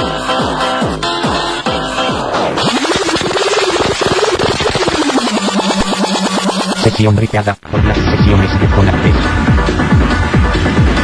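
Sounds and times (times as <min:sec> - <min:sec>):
pulsing buzzing synthesizer note: 0:02.6 - 0:07.3.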